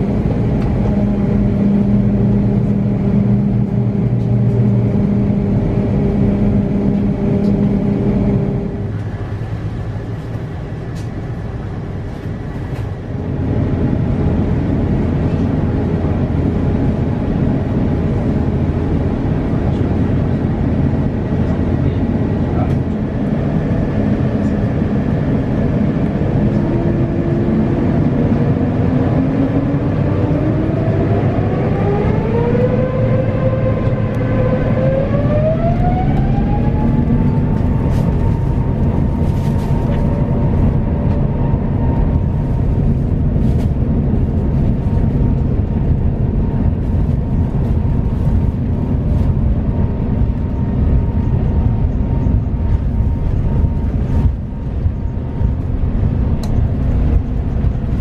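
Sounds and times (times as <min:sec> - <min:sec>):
aircraft engines rumbling and humming: 0:00.0 - 0:58.0
jet engine whine rising in pitch: 0:00.0 - 0:58.0.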